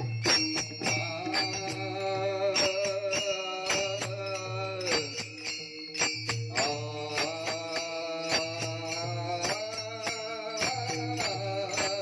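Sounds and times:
hand cymbals struck: 0.0 - 12.0
men singing together: 0.0 - 12.0.

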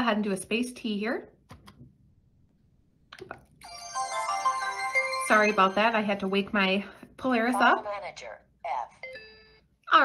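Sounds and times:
electronic wake-up chime: 3.6 - 6.4.

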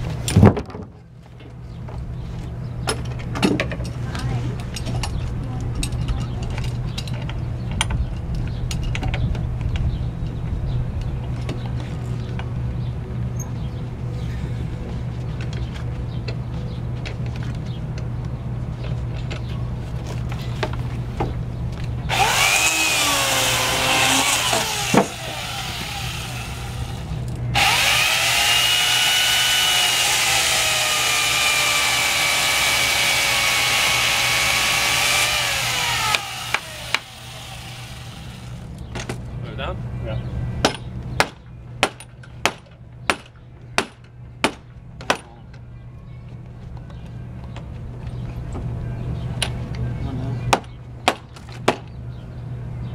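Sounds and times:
electric drill running: 22.1 - 38.6.

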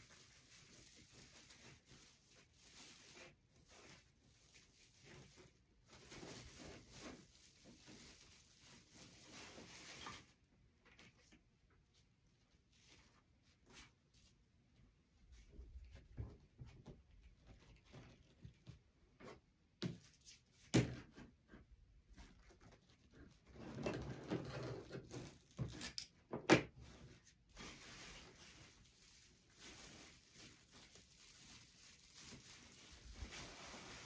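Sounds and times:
ribbon rustling and crinkling: 0.0 - 11.4, 26.9 - 34.0.

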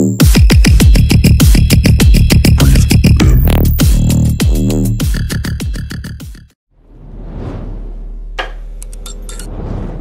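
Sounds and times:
whooshes: 6.8 - 8.4, 9.4 - 10.0.

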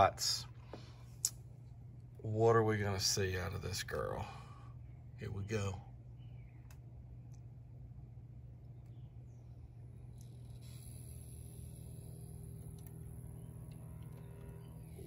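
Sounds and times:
faint high-pitched whine: 0.0 - 15.0
low electrical hum: 0.0 - 15.0.

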